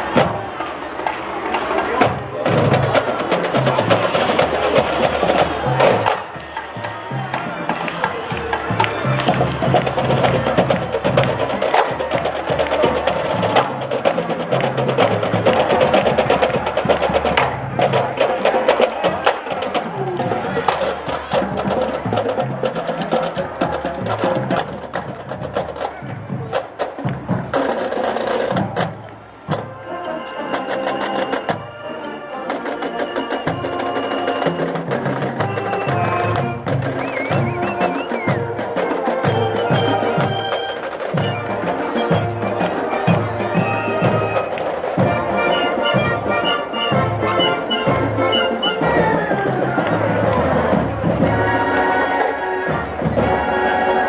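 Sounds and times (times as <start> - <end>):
drumline snare and drums: 0.0 - 31.8, 32.5 - 54.0
marching band brass: 0.0 - 54.0.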